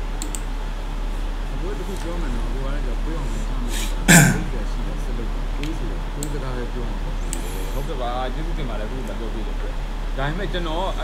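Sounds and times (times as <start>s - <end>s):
breath intake: 3.3s - 4.6s
man clearing his throat: 3.7s - 4.7s.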